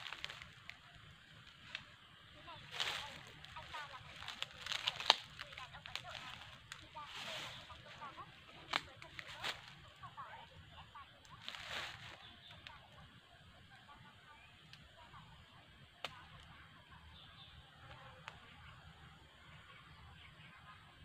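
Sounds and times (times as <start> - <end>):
dry leaves rustling: 0.0 - 10.5, 11.2 - 12.8.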